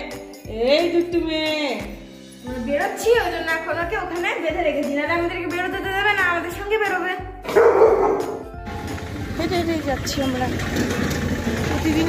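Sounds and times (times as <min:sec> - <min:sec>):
dog barking: 0:07.5 - 0:08.4.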